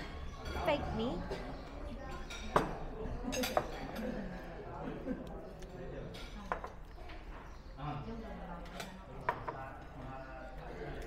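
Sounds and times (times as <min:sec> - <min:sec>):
tableware clinking: 0:00.0 - 0:04.3
faint background voices: 0:00.0 - 0:11.0.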